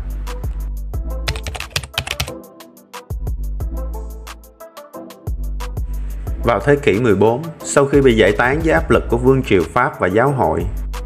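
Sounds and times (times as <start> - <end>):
background music with low bass: 0.0 - 11.0
keyboard typing clicks: 1.3 - 2.3.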